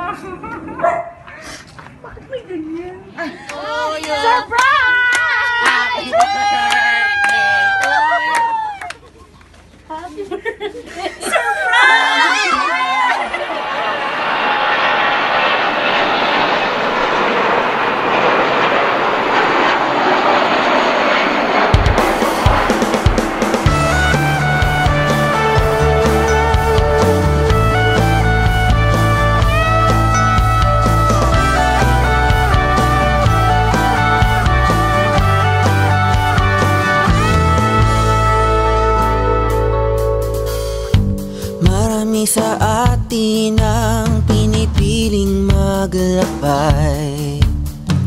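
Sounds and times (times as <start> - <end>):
small dog barking: 0.8 - 1.3
excited voices: 3.2 - 9.2, 11.2 - 15.1
woman crying: 9.9 - 13.3
jet airliner engines: 13.4 - 38.2
music with low drum thumps: 21.8 - 48.0.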